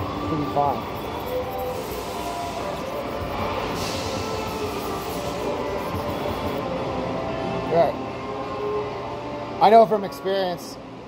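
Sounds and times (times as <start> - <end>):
background music: 0.0 - 11.0
steady room hum: 0.0 - 11.0
knife grinding on sharpening stone: 0.8 - 6.6.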